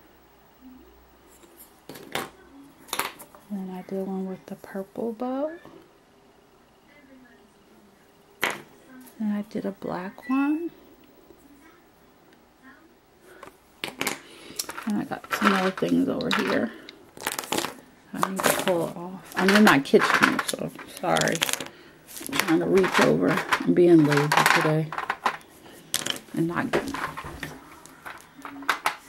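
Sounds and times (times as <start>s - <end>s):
woman speaking: 3.5s - 5.7s, 8.8s - 10.8s, 14.8s - 16.9s, 18.1s - 21.5s, 22.3s - 25.0s, 26.3s - 27.2s.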